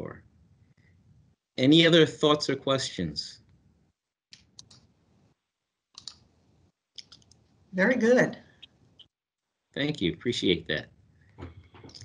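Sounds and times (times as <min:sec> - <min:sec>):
video call background noise: 0:00.0 - 0:00.5, 0:01.1 - 0:12.0
sharp clicks: 0:06.0 - 0:06.2.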